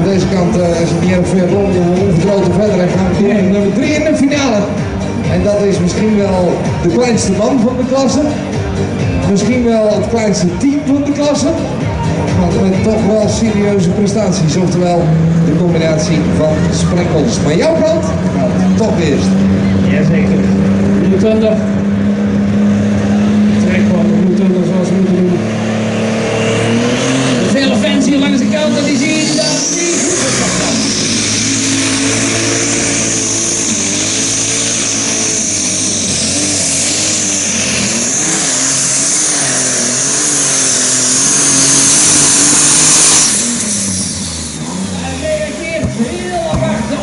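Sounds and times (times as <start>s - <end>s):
diesel tractor engine at full throttle: 0.0s - 47.0s
turbo whine: 0.0s - 47.0s.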